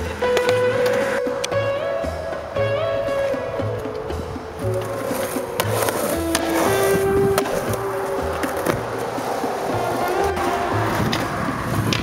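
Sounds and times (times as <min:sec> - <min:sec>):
skateboard hitting concrete: 0:00.0 - 0:01.5, 0:03.8 - 0:12.0.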